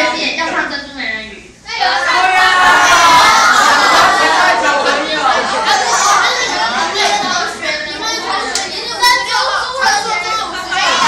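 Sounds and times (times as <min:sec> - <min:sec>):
students chattering: 0:01.6 - 0:11.0.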